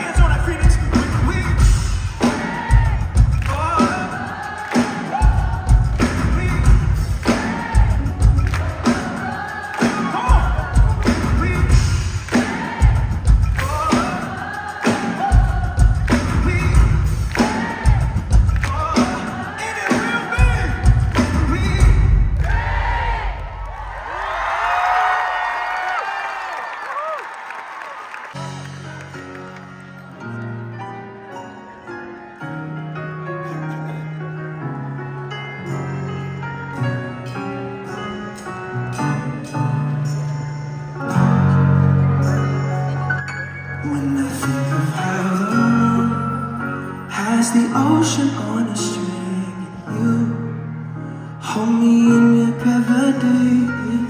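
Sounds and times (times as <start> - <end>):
live band music: 0.0 - 25.1, 28.2 - 54.0
person singing: 43.8 - 50.8, 51.4 - 54.0.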